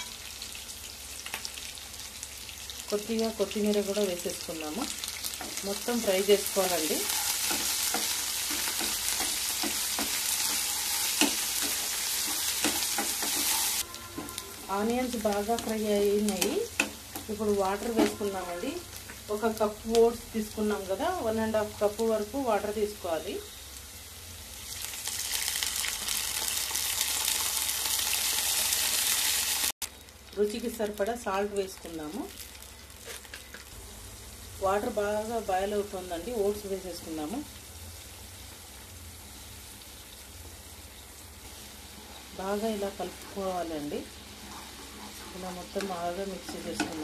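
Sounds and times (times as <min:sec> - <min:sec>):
onions sizzling in hot oil: 0:00.0 - 0:47.0
spatula scraping a pan: 0:07.0 - 0:14.6, 0:44.3 - 0:45.5.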